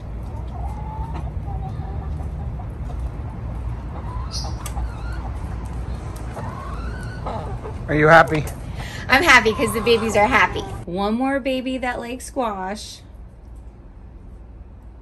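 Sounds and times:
hens clucking: 0.0 - 10.9.

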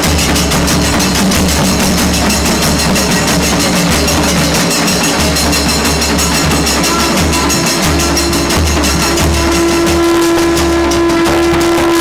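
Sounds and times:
brass cymbals: 0.0 - 12.0
drums beating fast rhythm: 0.0 - 12.0
horn holding long note: 0.6 - 12.0.

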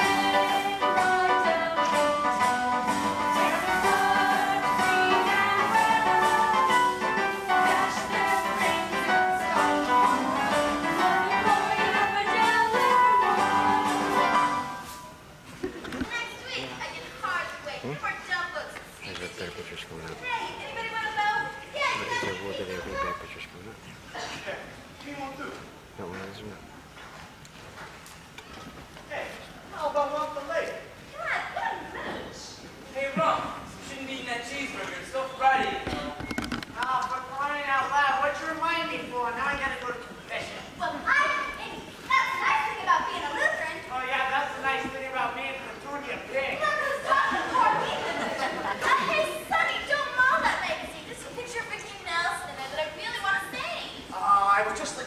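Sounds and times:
young voices talking and calling out: 16.0 - 19.3, 20.0 - 25.4, 29.6 - 33.8, 40.0 - 44.9, 45.5 - 55.0
actors speaking: 16.0 - 26.9, 29.0 - 55.0.

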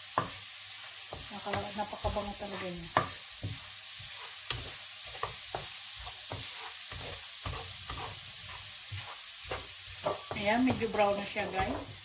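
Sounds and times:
garlic sizzling in a frying pan: 0.0 - 12.0
wooden spatula scraping a pan: 0.1 - 12.0.

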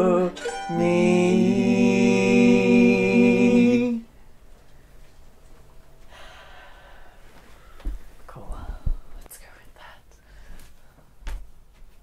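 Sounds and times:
person whispering softly: 8.3 - 10.2.

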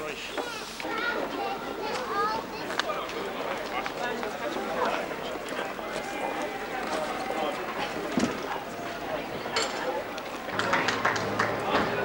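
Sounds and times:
crowd chatter: 0.0 - 12.0
children's voices: 0.1 - 12.0.

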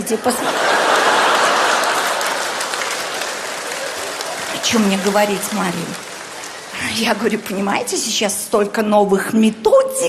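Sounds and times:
audience laughter: 0.2 - 6.7
audience applause: 0.3 - 8.2.

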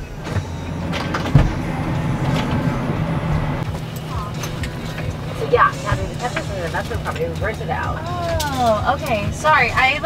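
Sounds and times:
vehicle low hum: 0.0 - 10.0
loud thump: 0.3 - 3.6.

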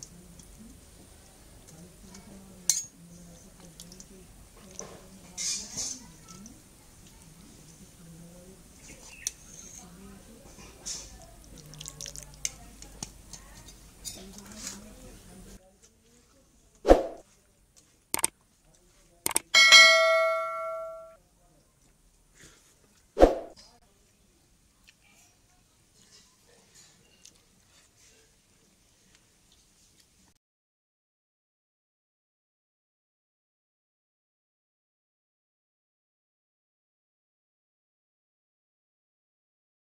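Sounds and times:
sharp clicks: 19.3 - 19.5
bell ding: 19.6 - 21.2.

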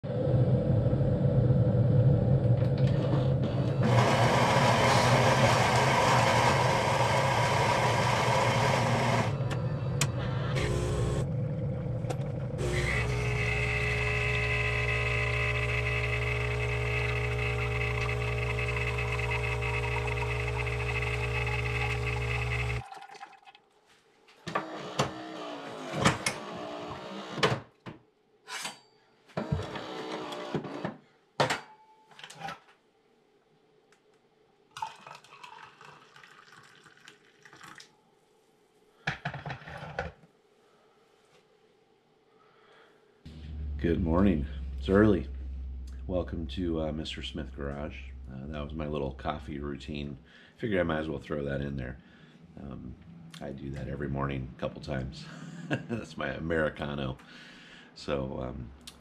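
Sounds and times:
coffee machine grinding: 2.8 - 22.8
pump humming: 3.8 - 22.9, 43.3 - 49.6.

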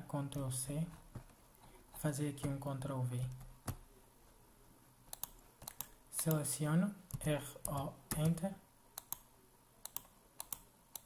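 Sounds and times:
computer keyboard clicks: 5.1 - 6.4, 9.8 - 11.0.

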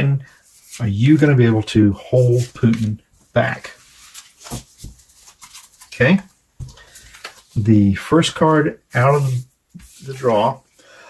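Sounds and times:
person speaking: 0.0 - 3.8, 7.4 - 10.7
cards shuffling: 2.2 - 3.0, 3.8 - 7.6.

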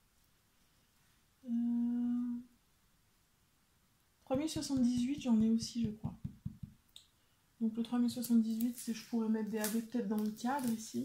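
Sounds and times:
woman humming: 1.4 - 2.5.

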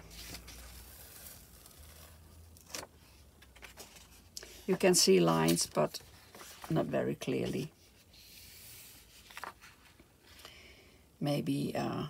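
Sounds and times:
crisp paper rustle: 0.0 - 10.4.

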